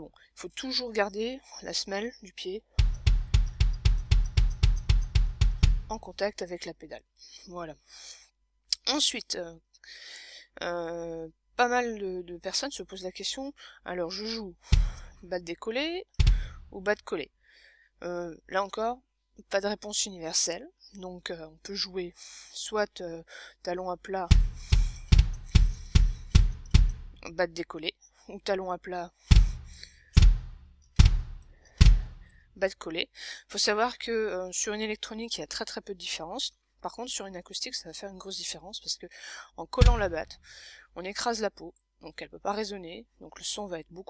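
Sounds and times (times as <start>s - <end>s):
electronic bass drum thumps: 2.8s - 6.0s, 14.7s - 15.2s, 16.2s - 16.8s, 24.3s - 27.2s, 29.3s - 32.3s, 39.8s - 40.3s.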